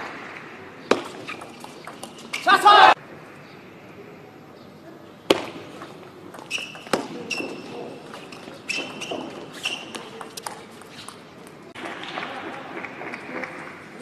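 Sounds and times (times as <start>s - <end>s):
crowd noise: 0.0s - 14.0s
short high squeaks: 1.2s - 2.6s, 6.4s - 11.3s.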